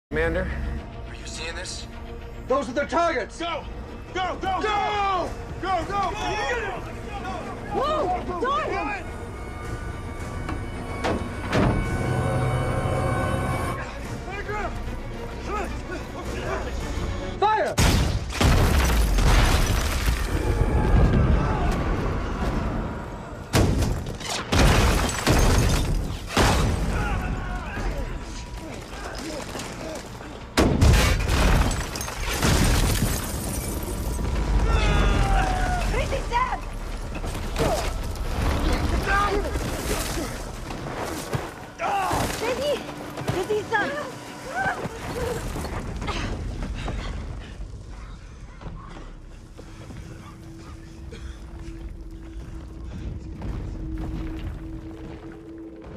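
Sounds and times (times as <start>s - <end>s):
film music score: 0.1s - 55.9s
people shouting: 4.2s - 9.1s, 20.3s - 23.5s, 26.4s - 30.1s, 34.4s - 38.0s, 41.7s - 45.4s.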